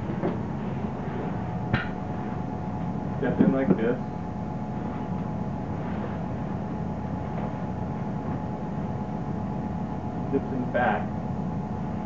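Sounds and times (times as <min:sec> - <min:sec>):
steady machine hum: 0:00.0 - 0:12.0
rustling of heavy canvas suit: 0:04.7 - 0:08.5.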